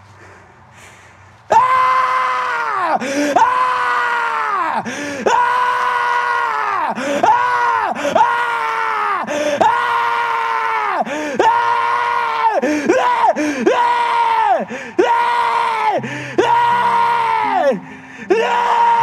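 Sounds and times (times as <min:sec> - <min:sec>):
man screaming: 0:01.5 - 0:19.0.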